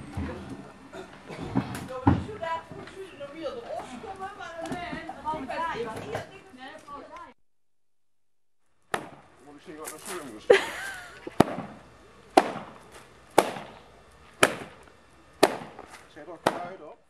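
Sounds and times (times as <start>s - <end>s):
carpet beater whacking a rug: 11.2s - 14.8s, 15.4s - 16.9s.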